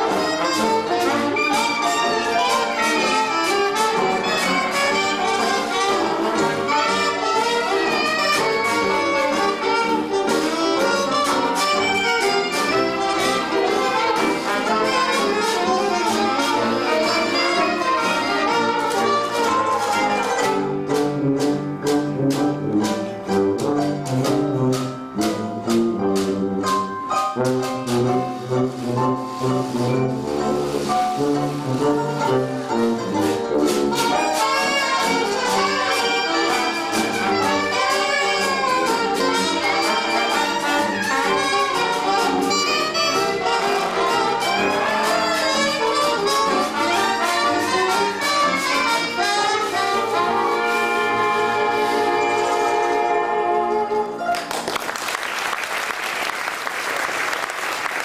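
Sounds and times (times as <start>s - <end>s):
jazz band playing: 0.0s - 58.0s.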